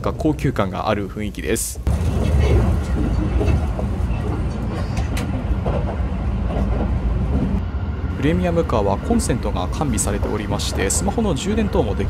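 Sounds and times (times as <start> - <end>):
train rumble from inside car: 0.0 - 12.0.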